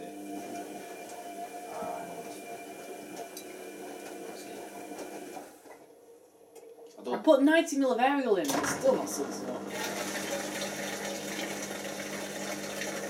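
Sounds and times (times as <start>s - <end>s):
washing machine motor humming: 0.0s - 6.2s, 8.5s - 13.0s.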